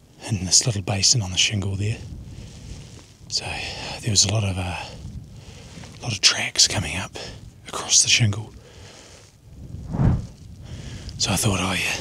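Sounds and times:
man breathing heavily: 0:02.2 - 0:03.1, 0:05.3 - 0:06.0, 0:08.6 - 0:09.4, 0:10.6 - 0:11.2.

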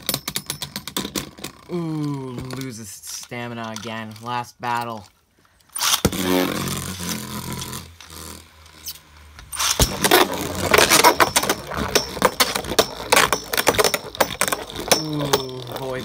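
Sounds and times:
spinning tops whirring: 0:05.7 - 0:16.0
spinning tops clashing and clicking: 0:08.8 - 0:16.0.

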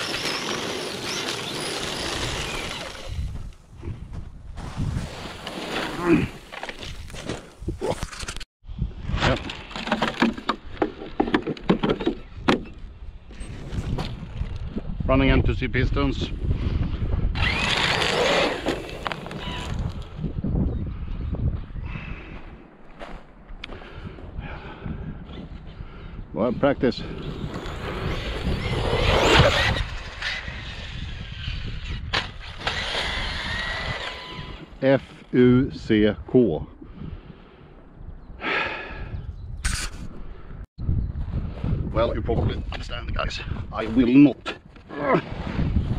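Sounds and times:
toy truck motor whining: 0:00.0 - 0:03.3, 0:17.4 - 0:19.8, 0:27.6 - 0:34.7
wind rumble on microphone: 0:02.3 - 0:05.3, 0:08.6 - 0:09.6, 0:12.2 - 0:17.9, 0:19.0 - 0:22.8, 0:23.5 - 0:45.9
person sighing heavily: 0:06.0 - 0:06.5, 0:38.4 - 0:39.2.

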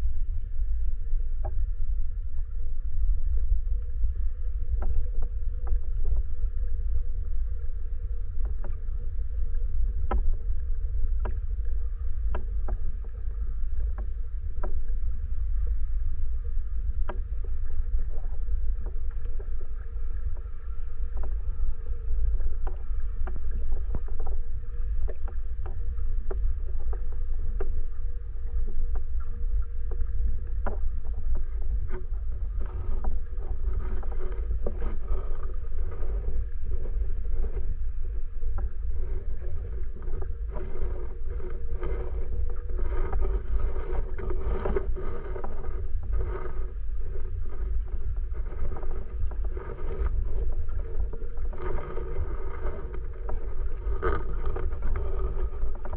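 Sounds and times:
faint hum: 0:00.0 - 0:55.9
underwater rumble of moving water: 0:00.0 - 0:55.9.

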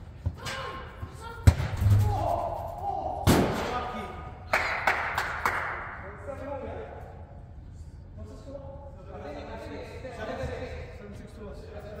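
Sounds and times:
ball bouncing on hall floor: 0:01.4 - 0:02.0.

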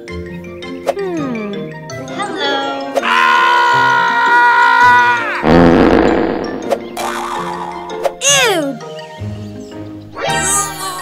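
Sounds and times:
background music: 0:00.0 - 0:11.0
high-pitched cartoon scream: 0:03.0 - 0:05.4, 0:10.2 - 0:11.0.

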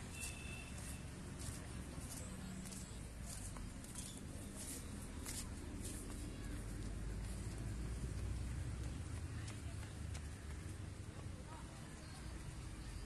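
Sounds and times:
faint distant voices: 0:00.0 - 0:13.0.

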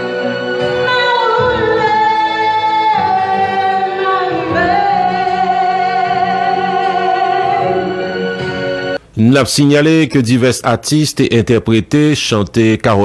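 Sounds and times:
backing music: 0:00.0 - 0:09.1
woman singing into a microphone: 0:00.8 - 0:08.0.

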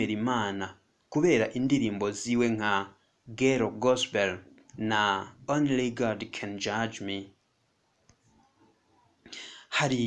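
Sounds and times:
person speaking: 0:00.0 - 0:07.4, 0:08.1 - 0:10.0
faint clicks: 0:08.0 - 0:08.5.

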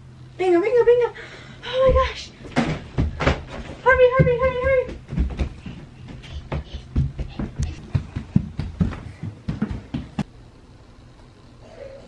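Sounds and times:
rustles and knocks of bedding: 0:01.8 - 0:10.3.

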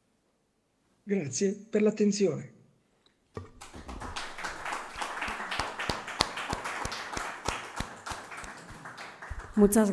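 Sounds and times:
sharp single hand claps: 0:03.4 - 0:09.6
audience applauding: 0:03.5 - 0:09.9.

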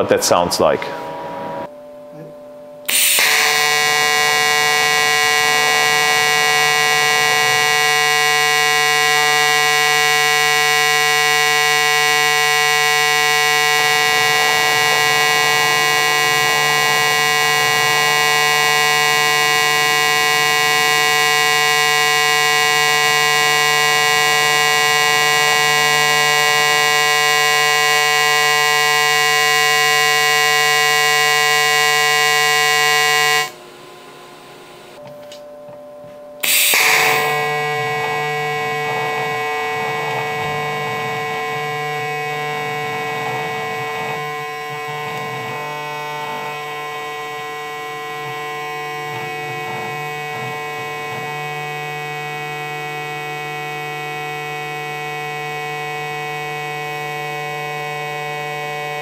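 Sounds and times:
welding arc high-pitched tone: 0:02.9 - 0:33.6, 0:36.4 - 0:59.0.

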